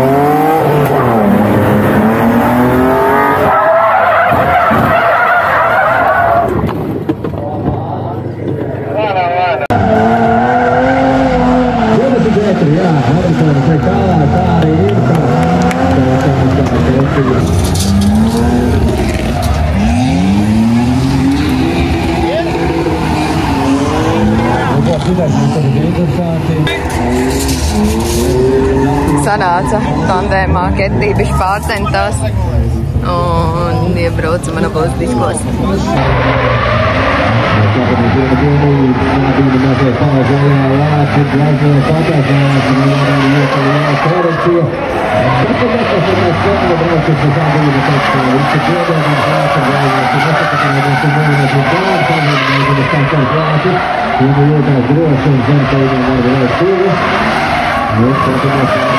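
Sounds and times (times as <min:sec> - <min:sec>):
car engine revving: 0:00.0 - 0:58.9
tyres squealing: 0:35.8 - 0:58.9.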